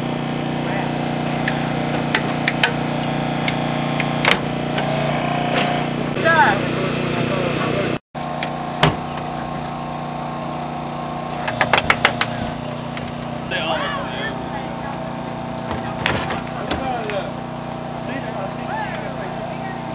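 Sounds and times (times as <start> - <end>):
small engine running: 0.0 - 19.9.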